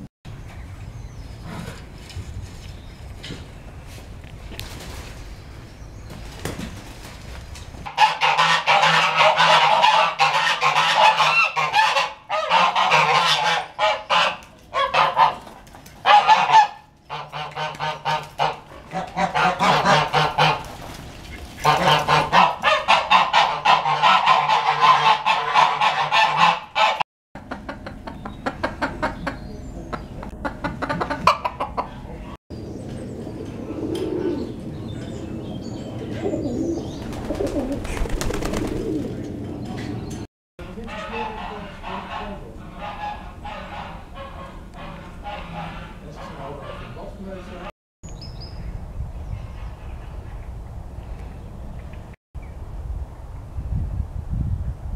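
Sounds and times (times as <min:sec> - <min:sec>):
geese honking: 0:07.9 - 0:15.4, 0:16.0 - 0:20.6, 0:21.7 - 0:27.0, 0:40.6 - 0:47.7.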